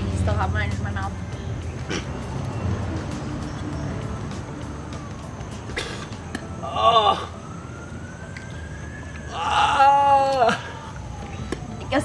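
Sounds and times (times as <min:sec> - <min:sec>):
vehicle engine rumble: 0:00.0 - 0:12.0
faint siren: 0:02.5 - 0:12.0.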